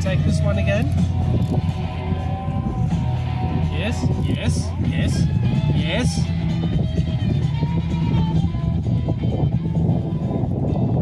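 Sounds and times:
guitar background music: 0.0 - 11.0.

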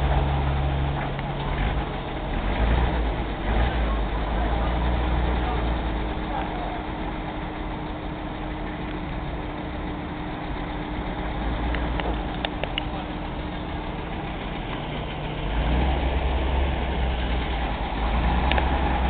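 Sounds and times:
vehicle engine running at low speed: 0.0 - 19.0.

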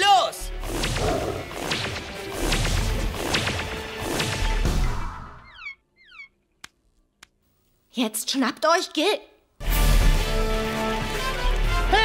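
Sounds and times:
background music: 0.0 - 5.6, 9.6 - 12.0
whip-like snaps and swishes: 0.6 - 4.8.

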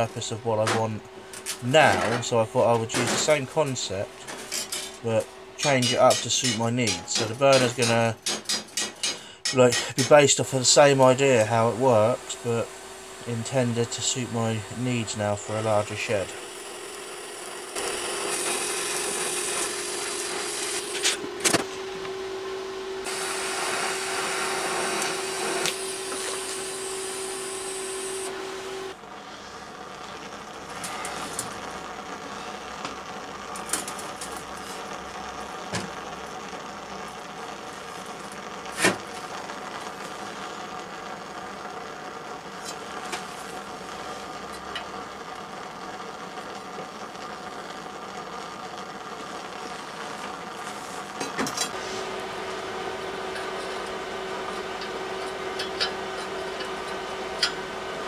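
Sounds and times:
welding arc buzzing hum: 0.0 - 58.0.

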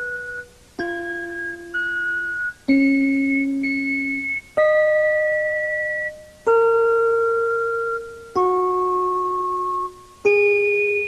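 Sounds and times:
slow melody of ringing notes: 0.0 - 11.0.

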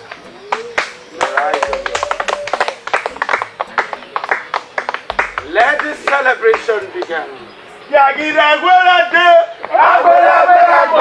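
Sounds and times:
people clapping: 0.0 - 7.3.

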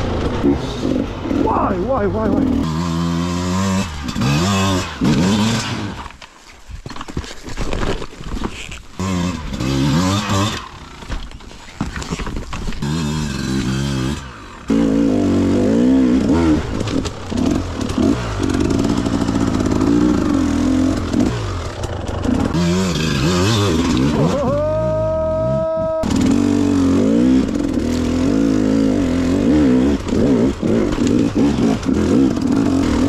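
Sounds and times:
motorcycle engines revving: 0.0 - 6.1, 8.6 - 11.2, 12.8 - 33.0.

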